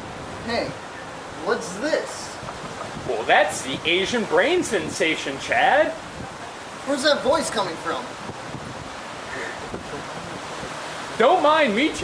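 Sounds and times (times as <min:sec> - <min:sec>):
wind on microphone: 0:02.3 - 0:05.2, 0:05.9 - 0:07.4, 0:08.0 - 0:11.2.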